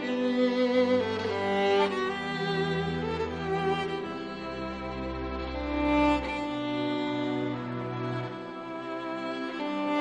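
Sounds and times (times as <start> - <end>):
slow fiddle tune: 0.0 - 10.0.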